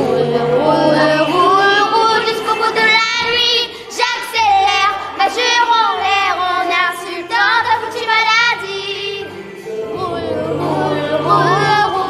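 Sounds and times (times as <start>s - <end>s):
girl singing: 0.0s - 9.4s, 10.0s - 12.0s
instrumental backing with bass: 7.4s - 12.0s.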